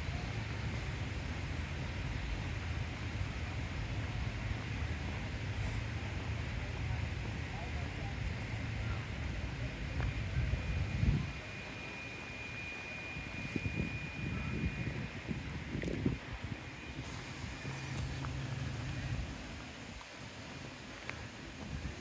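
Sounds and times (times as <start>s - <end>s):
faint high whine: 0.0s - 22.0s
wind rumbling on microphone: 7.8s - 11.6s, 13.1s - 22.0s.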